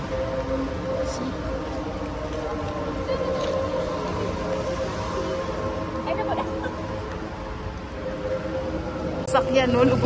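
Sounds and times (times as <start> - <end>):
constant hum: 0.0 - 10.0
low rumble: 0.0 - 10.0.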